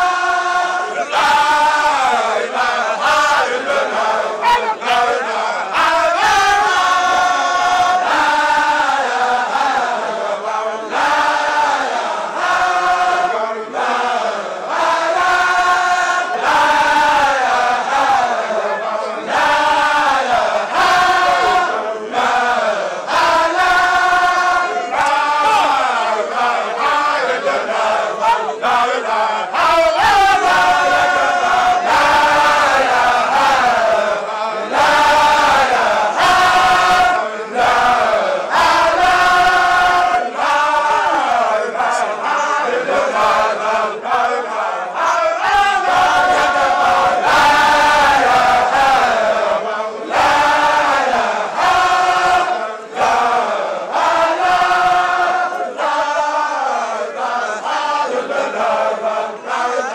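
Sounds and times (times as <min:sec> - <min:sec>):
men chanting in chorus: 0:00.0 - 0:59.9.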